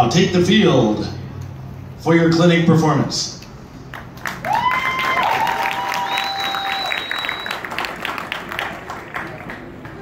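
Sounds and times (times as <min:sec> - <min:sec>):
crowd applauding: 0:03.9 - 0:10.0
people whistling long notes: 0:05.8 - 0:07.7.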